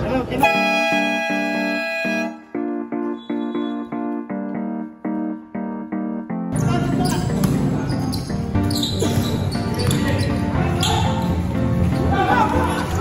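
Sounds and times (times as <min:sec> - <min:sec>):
keyboard music: 0:00.3 - 0:13.0
shoe squeaks: 0:03.0 - 0:04.1, 0:06.5 - 0:11.4
basketball bouncing on hard court: 0:07.0 - 0:07.7.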